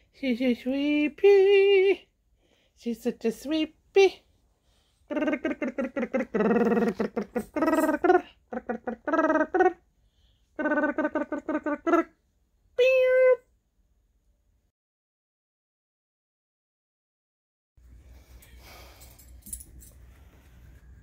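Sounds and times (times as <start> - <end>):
woman singing wordless syllables: 0.2 - 2.1.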